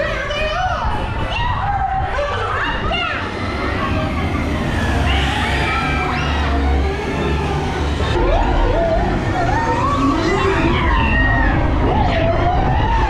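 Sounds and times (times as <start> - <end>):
voices: 0.0 - 13.0
wavering siren-like wails: 3.4 - 13.0.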